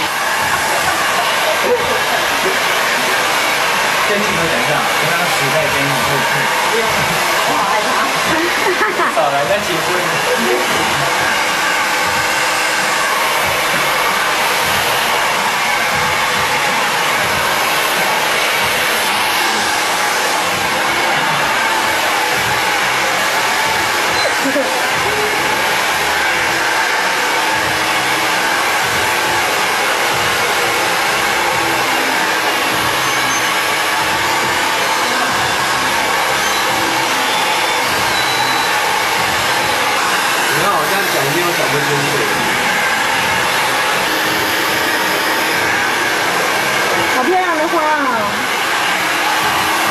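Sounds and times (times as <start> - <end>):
hair dryer blowing: 0.0 - 49.9.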